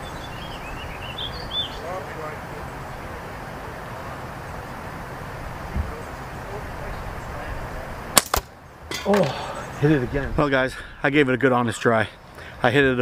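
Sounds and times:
wind on microphone: 2.4s - 8.2s
slingshot shot cracks: 8.2s - 8.5s.

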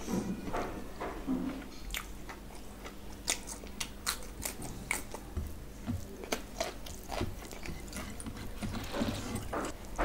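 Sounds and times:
person chewing food: 1.6s - 10.0s.

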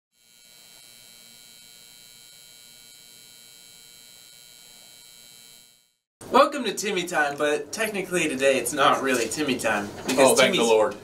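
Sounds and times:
faint electrical hum: 6.2s - 11.0s.

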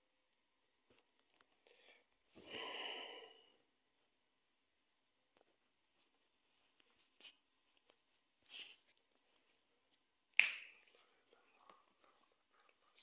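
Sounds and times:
man whispering close to microphone: 11.0s - 12.1s.

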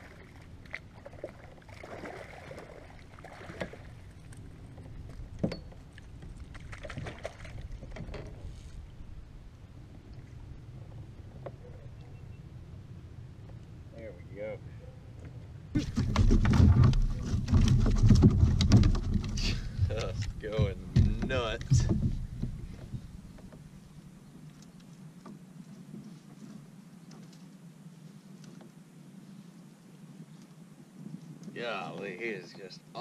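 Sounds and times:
water splashing against kayak: 0.0s - 9.2s, 15.8s - 24.1s.

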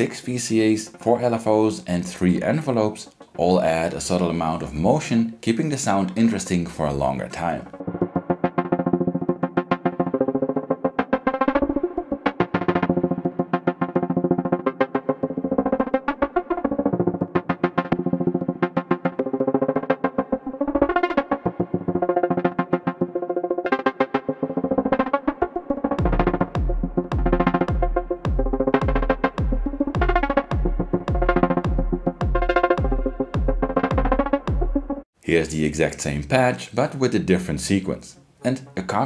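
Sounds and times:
synthesizer plucked melody: 7.4s - 35.0s.

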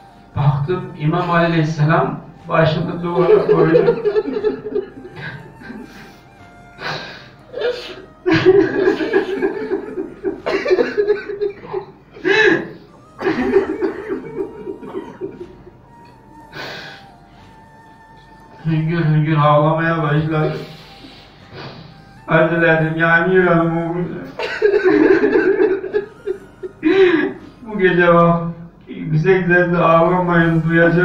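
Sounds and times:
man sobbing: 2.5s - 28.2s.

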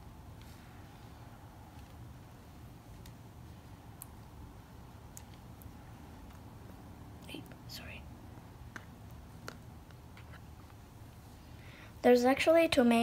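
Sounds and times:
person whispering: 7.2s - 8.1s.

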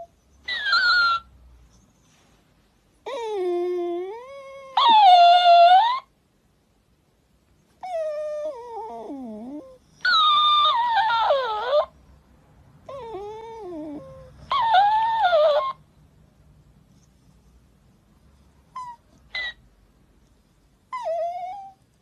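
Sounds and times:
puppy whining: 0.0s - 2.2s, 3.0s - 6.1s, 7.8s - 12.1s, 12.8s - 15.9s, 18.4s - 19.7s, 20.8s - 22.0s
toy mimicking high-pitched cries: 10.0s - 11.9s.

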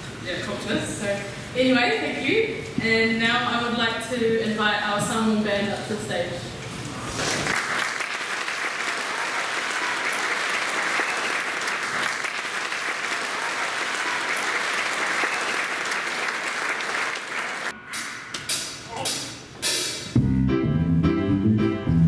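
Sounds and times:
audience applauding: 7.2s - 17.8s.

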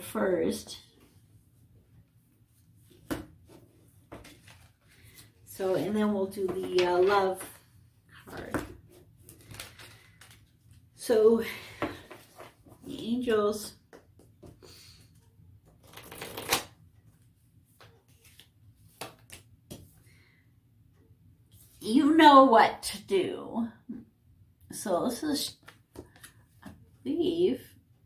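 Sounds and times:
card handling: 9.2s - 10.6s, 15.7s - 16.7s
cards shuffled by hand: 15.8s - 16.7s, 17.8s - 19.9s.

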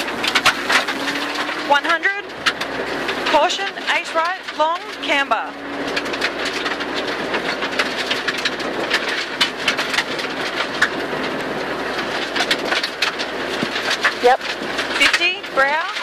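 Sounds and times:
gravel rattling on underbody: 0.0s - 16.0s
rally car engine under load: 0.0s - 16.0s.

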